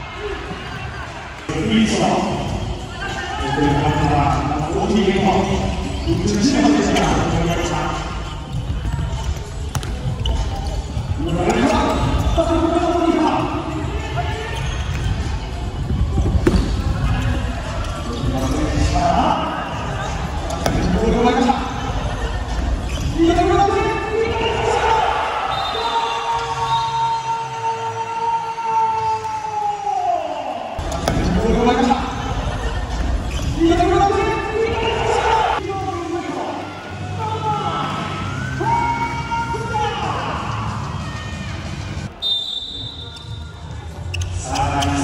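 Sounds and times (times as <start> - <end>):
players' voices: 0.0 - 45.0
ball kicked and bouncing on court: 8.2 - 12.4, 13.4 - 17.3, 20.3 - 21.1, 30.8 - 31.4.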